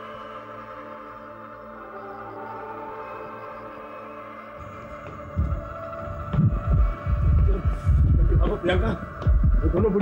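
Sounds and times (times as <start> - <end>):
deep low thuds: 5.2 - 10.0.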